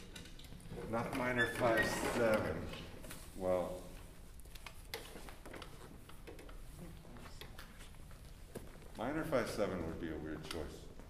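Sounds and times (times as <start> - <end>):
faint clicks and rustles: 0.0 - 11.0.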